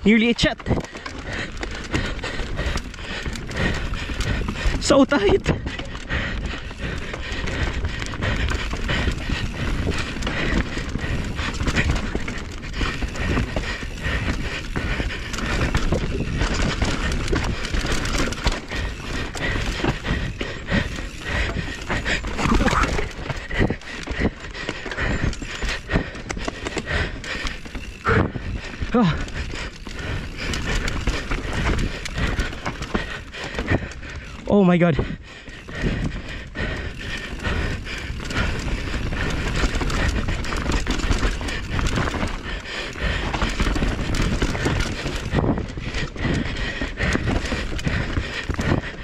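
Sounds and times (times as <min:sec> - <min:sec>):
bike clattering and rattling: 0:00.0 - 0:49.0
tyres rumbling on dirt: 0:00.1 - 0:34.9, 0:35.5 - 0:49.0.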